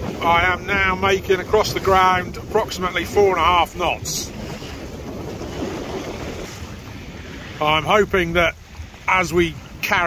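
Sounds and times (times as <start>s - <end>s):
water washing along hull: 0.0s - 10.0s
wind buffeting microphone: 0.0s - 10.0s.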